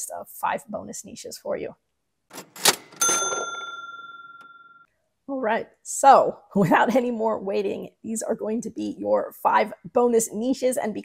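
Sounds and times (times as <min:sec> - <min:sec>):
bell-like ding: 0:03.0 - 0:04.9.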